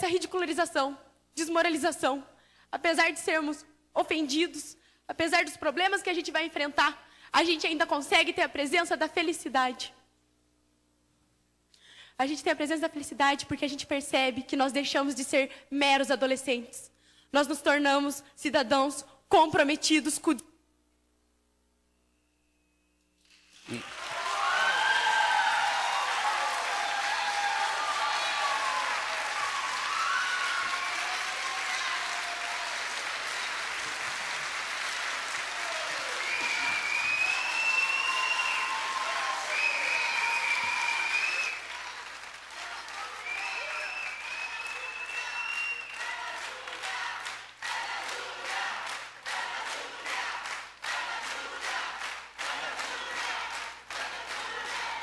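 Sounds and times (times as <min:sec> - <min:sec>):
audience applauding: 0:23.5 - 0:55.0.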